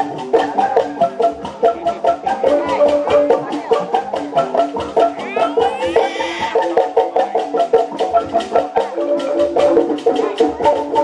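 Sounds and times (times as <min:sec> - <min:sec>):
drums: 0:00.0 - 0:11.0
high sliding melody: 0:05.0 - 0:06.8.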